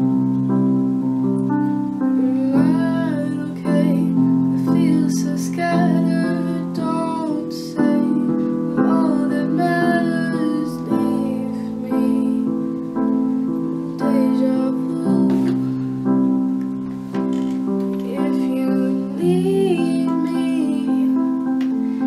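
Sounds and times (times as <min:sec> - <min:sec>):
piano chords: 0:00.0 - 0:22.0
woman singing a ballad: 0:02.2 - 0:12.8, 0:13.9 - 0:15.9, 0:18.0 - 0:22.0.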